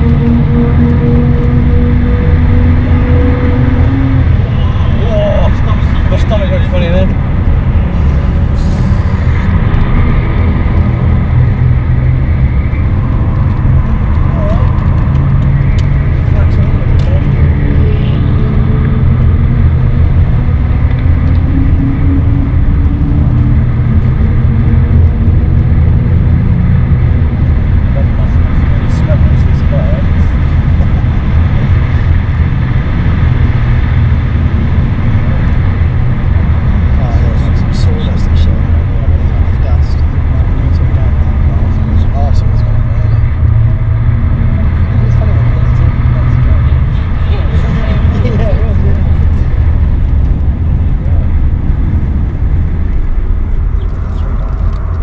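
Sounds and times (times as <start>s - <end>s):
car engine drone from inside: 0.0s - 55.0s
road and tyre noise: 0.0s - 55.0s.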